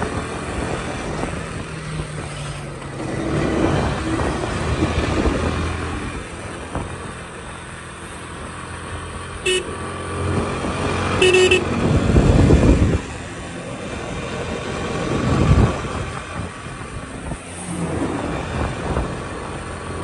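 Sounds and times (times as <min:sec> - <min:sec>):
passing traffic rushing: 0:00.0 - 0:20.0
vehicle engine running: 0:00.0 - 0:20.0
car horn toots: 0:09.4 - 0:09.8, 0:11.2 - 0:11.8.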